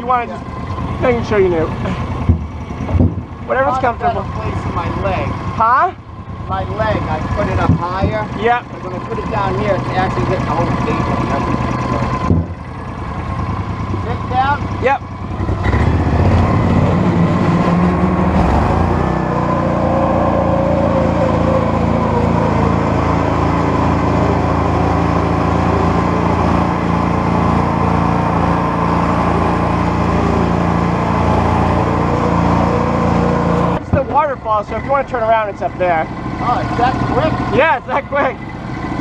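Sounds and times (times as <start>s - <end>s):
atv engine running: 0.0s - 39.0s.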